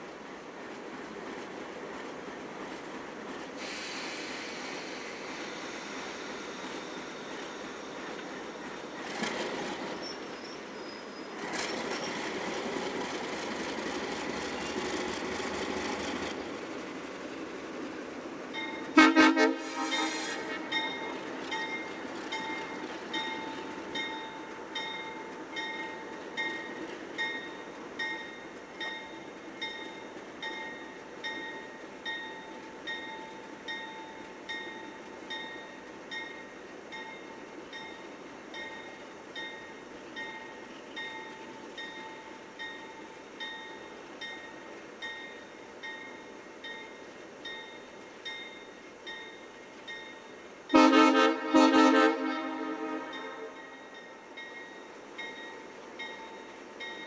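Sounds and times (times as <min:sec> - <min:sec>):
diesel locomotive rushing: 0:00.0 - 0:57.0
train horn blast: 0:18.9 - 0:20.8, 0:50.7 - 0:53.7
locomotive bell ringing: 0:19.9 - 0:51.0, 0:53.0 - 0:57.0.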